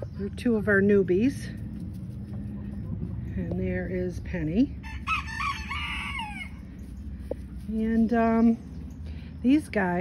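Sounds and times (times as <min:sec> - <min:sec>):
rooster crowing: 0:04.8 - 0:06.6.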